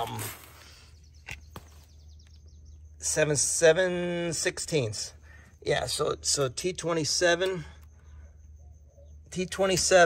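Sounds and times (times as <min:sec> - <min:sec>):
steady low hum: 0:00.0 - 0:10.0
faint high chirping: 0:05.1 - 0:10.0.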